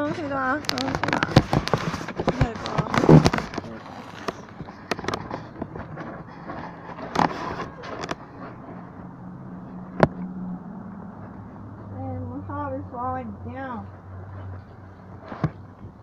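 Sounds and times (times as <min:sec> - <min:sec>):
sharp clicks and knocks: 0:00.6 - 0:08.7.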